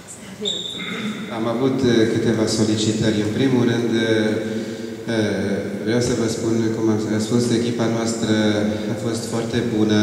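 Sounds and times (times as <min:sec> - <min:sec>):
man speaking over a microphone: 0:00.8 - 0:10.0.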